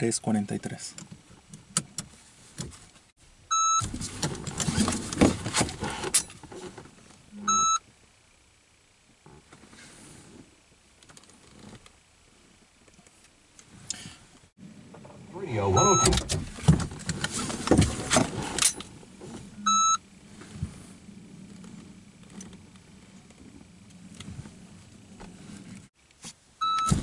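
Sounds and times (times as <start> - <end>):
shot timer beeps: 3.5 - 3.8, 7.4 - 7.8, 15.8 - 16.1, 19.7 - 20.0, 26.6 - 27.0.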